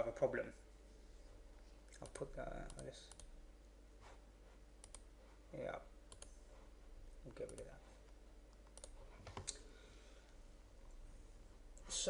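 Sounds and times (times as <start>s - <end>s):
faint computer mouse clicks: 4.8s - 5.1s, 6.1s - 6.4s, 7.4s - 7.7s, 8.5s - 9.6s.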